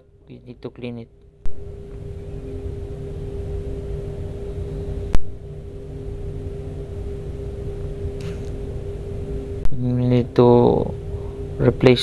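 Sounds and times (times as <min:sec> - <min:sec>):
machinery hum: 0:00.0 - 0:12.0
sharp click: 0:08.2 - 0:08.6.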